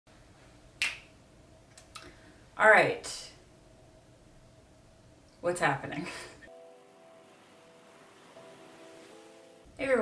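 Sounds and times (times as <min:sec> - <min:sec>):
finger snap: 0:00.8 - 0:01.1.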